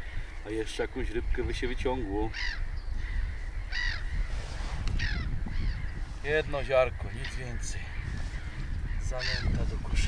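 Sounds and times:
bird cawing: 0:00.0 - 0:00.5, 0:02.2 - 0:09.7.

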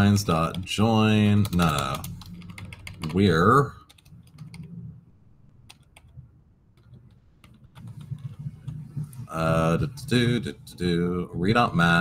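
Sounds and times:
computer keyboard keystrokes: 0:01.4 - 0:03.2, 0:05.7 - 0:06.1.

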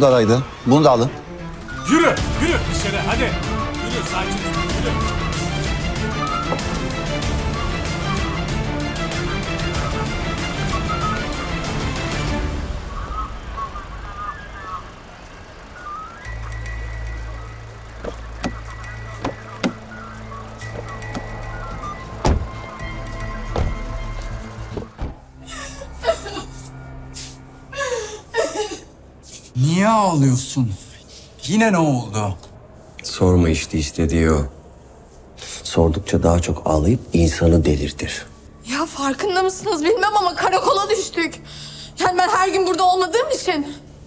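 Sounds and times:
loud dense music: 0:01.1 - 0:13.3
scattered knocks: 0:18.0 - 0:19.9, 0:22.1 - 0:25.2.

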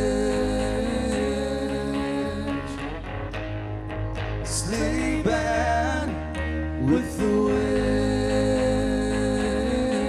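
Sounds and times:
acoustic guitar: 0:00.0 - 0:10.0
electric guitar lead: 0:00.0 - 0:10.0.

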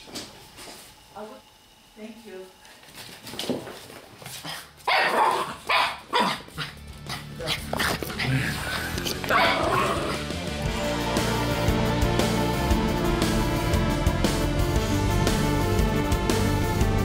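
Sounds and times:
dog barking: 0:04.9 - 0:06.7, 0:09.3 - 0:10.0
background music: 0:06.1 - 0:17.0.

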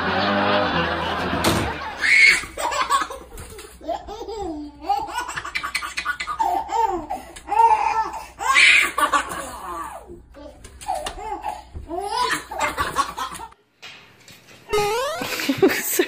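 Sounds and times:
baby laughing: 0:01.8 - 0:13.6.

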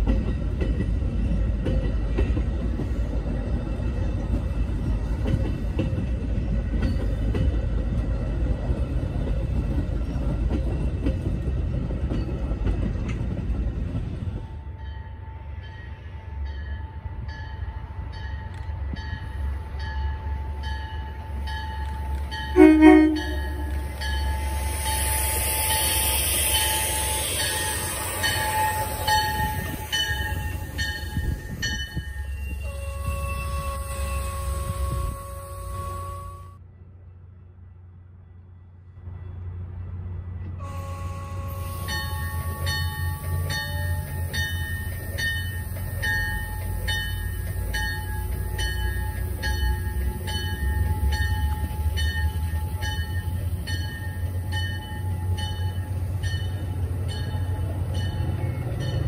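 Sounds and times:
train wheels rumbling on rail: 0:00.0 - 0:59.0
train horn blast: 0:22.5 - 0:24.2, 0:32.6 - 0:36.6, 0:40.6 - 0:43.5
high hiss: 0:23.7 - 0:30.8.

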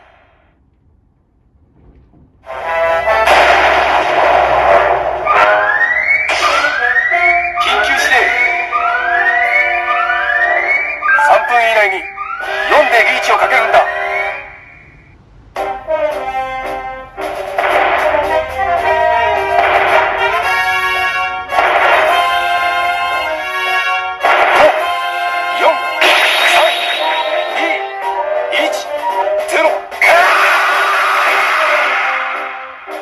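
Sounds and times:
brass music: 0:02.4 - 0:14.6, 0:15.4 - 0:33.0
alarm-like pitch sweeps: 0:25.6 - 0:28.6.

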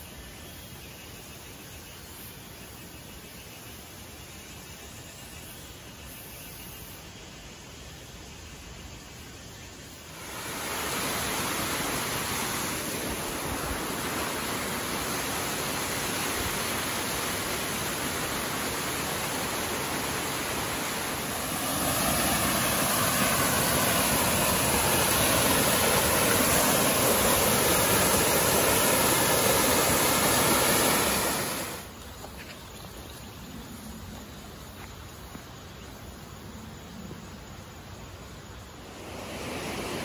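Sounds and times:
waterfall rushing over rock: 0:10.1 - 0:32.1.

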